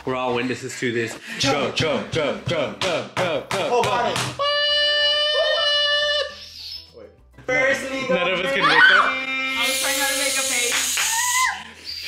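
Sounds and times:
woman cheering ohhh: 8.6s - 10.0s, 10.7s - 11.8s.

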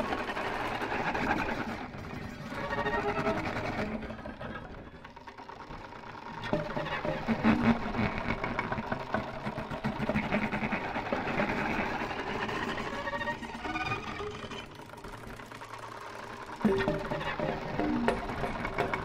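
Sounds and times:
violin through electronic effects: 0.0s - 4.4s, 9.8s - 14.9s, 16.3s - 19.0s.

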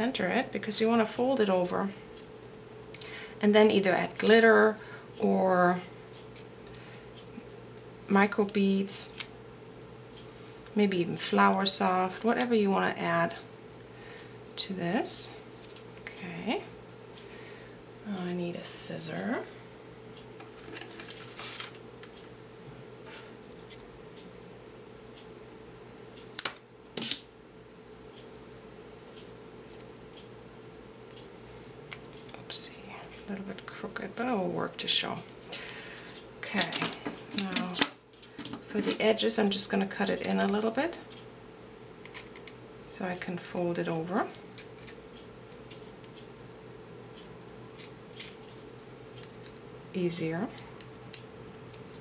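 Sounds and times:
faint steady hum: 0.0s - 52.0s
scissors snipping tape: 26.2s - 27.2s.

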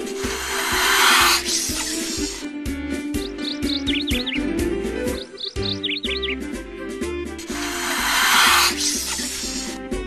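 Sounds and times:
bird chirps: 0.0s - 2.5s, 3.1s - 6.5s, 7.4s - 9.8s
snake hissing: 0.0s - 2.6s, 7.4s - 9.8s.

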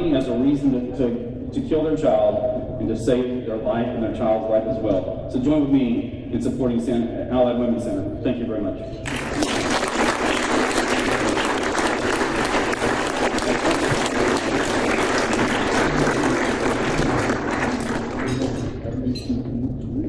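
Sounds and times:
speech: 0.0s - 9.0s, 17.8s - 20.0s
audience applauding: 9.0s - 18.8s.

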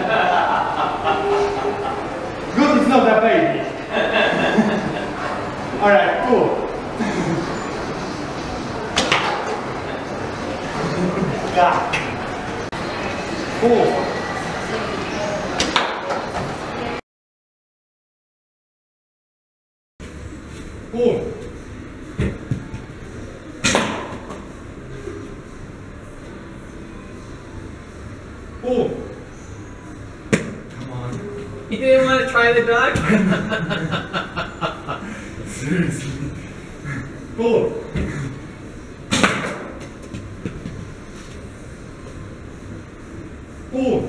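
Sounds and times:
arrow striking: 23.6s - 24.4s, 39.1s - 39.9s.

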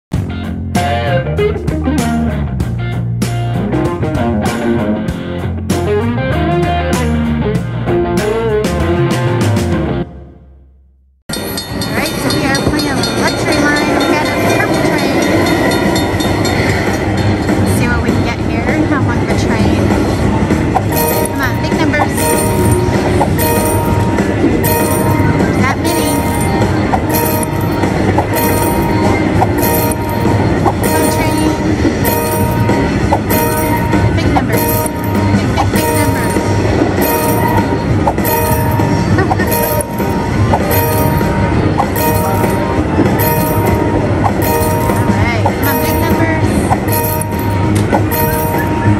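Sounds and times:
rolling train rumble: 11.4s - 20.8s
chiming tones: 20.8s - 48.9s
short bright game sounds: 20.9s - 48.8s.

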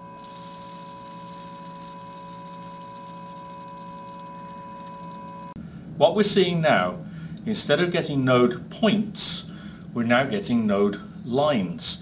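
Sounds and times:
salt grains bouncing on plate: 0.0s - 5.5s
steady high-pitched tone: 0.0s - 5.6s.

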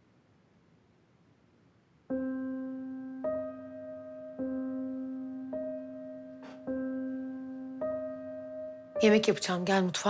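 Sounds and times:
slow piano chords: 2.1s - 10.0s.

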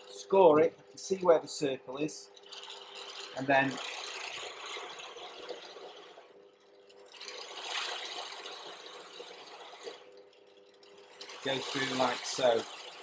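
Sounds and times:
drill motor hum: 1.4s - 13.0s
hole saw rasping into wood: 2.3s - 6.2s, 6.8s - 13.0s.

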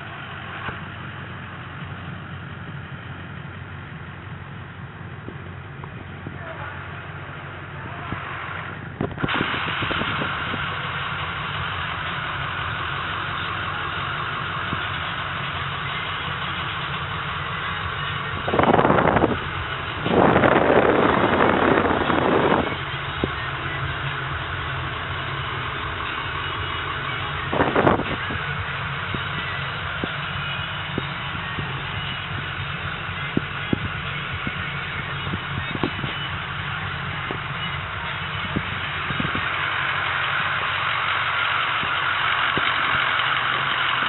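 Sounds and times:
diesel engine idling: 0.0s - 44.0s
low vehicle rumble: 0.0s - 44.0s.

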